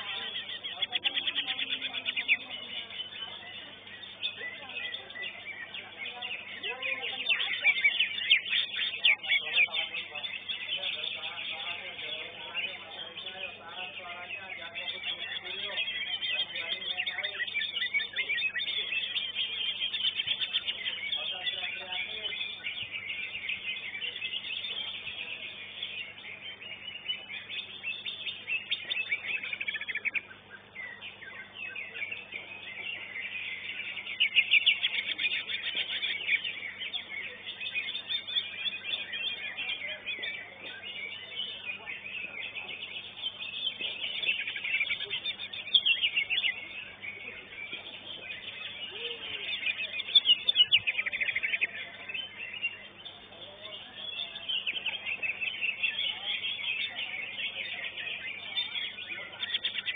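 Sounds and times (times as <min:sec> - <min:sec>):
bird singing chattering trills: 0:00.0 - 0:59.9.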